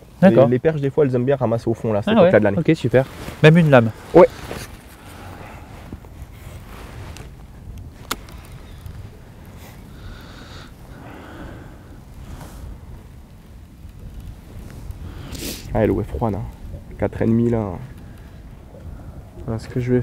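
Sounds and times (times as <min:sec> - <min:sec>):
wind rumble over open water: 0:02.7 - 0:20.0.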